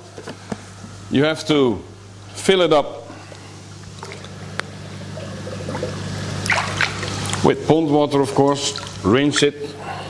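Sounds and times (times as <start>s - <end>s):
steady low hum: 0.0s - 10.0s
pond water splashing and trickling: 5.2s - 7.4s, 8.7s - 9.0s.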